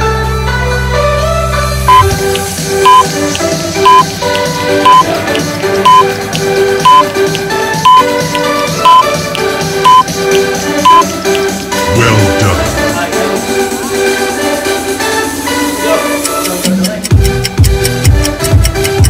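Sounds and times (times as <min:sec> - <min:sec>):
background music: 0:00.0 - 0:19.0
timer countdown beeps: 0:01.9 - 0:03.2, 0:03.8 - 0:05.1, 0:05.8 - 0:06.1, 0:06.8 - 0:07.1, 0:07.8 - 0:10.2, 0:10.8 - 0:11.1, 0:16.2 - 0:19.0.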